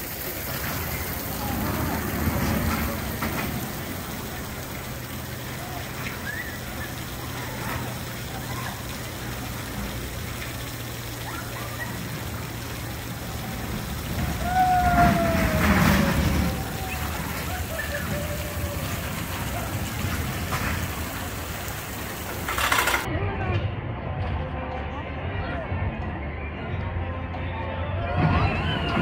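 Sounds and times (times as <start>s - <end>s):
background voices: 0.0s - 26.0s
roller coaster rumbling on track: 0.0s - 26.0s, 27.9s - 29.0s
rider yelling: 14.2s - 20.3s
short clatter: 22.4s - 23.1s.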